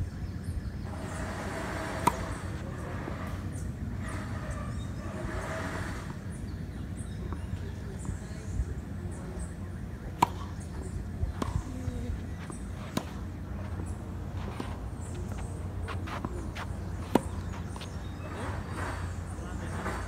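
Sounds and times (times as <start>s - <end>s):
tennis ball struck by rackets: 2.0s - 2.4s, 10.1s - 18.9s
tennis ball bouncing: 2.0s - 2.6s, 9.4s - 19.0s.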